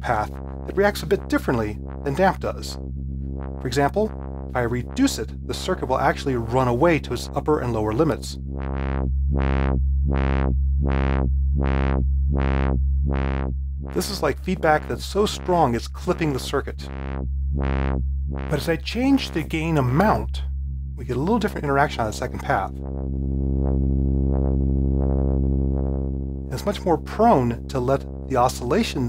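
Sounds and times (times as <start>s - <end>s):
synthesizer drone with sweeping filter: 0.0s - 29.0s.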